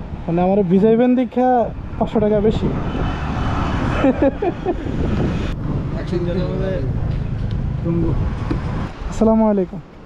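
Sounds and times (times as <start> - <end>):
low traffic rumble: 0.0 - 10.0
vehicle passing: 1.7 - 9.2.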